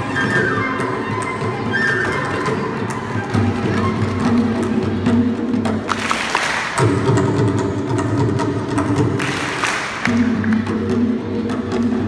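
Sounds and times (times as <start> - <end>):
hand drums playing rhythm: 0.4 - 12.0.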